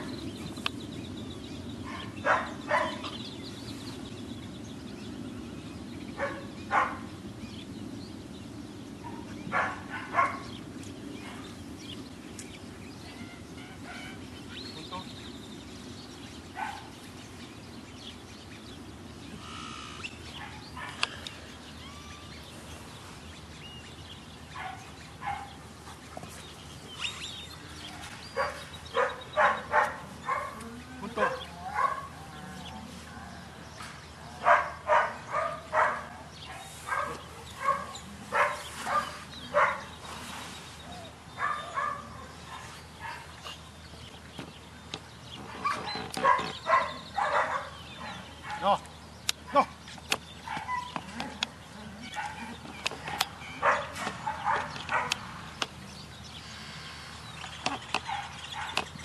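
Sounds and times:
dog barking: 0:01.9 - 0:03.1, 0:06.2 - 0:07.0, 0:09.1 - 0:10.5, 0:24.6 - 0:25.6, 0:28.4 - 0:32.2, 0:34.4 - 0:39.9, 0:41.4 - 0:43.3, 0:45.6 - 0:48.8, 0:52.1 - 0:55.2.

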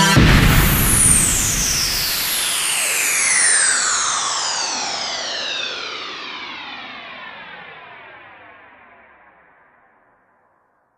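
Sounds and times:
synthesizer tones gliding downward: 0:00.0 - 0:02.6.

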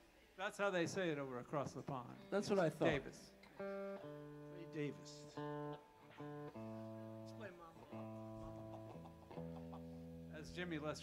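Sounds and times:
electric guitar single notes: 0:02.0 - 0:11.0.

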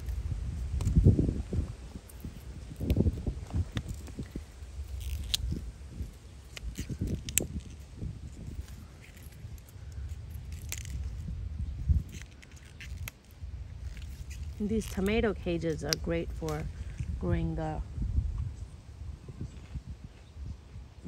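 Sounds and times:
pea vines rustling: 0:00.0 - 0:17.6.

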